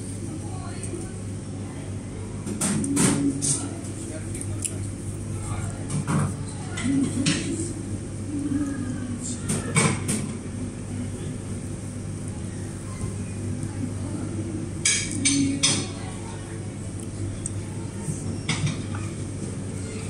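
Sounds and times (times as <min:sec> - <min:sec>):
faint background conversation: 0:00.0 - 0:20.0.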